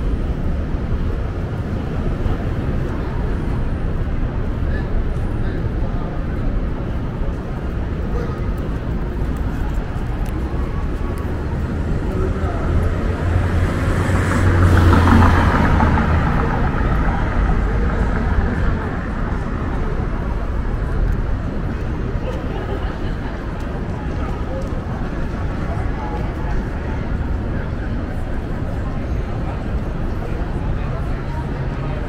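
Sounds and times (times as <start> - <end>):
traffic rumble: 0.0 - 32.0
voices of passersby: 0.0 - 32.0
vehicle passing: 7.8 - 23.6.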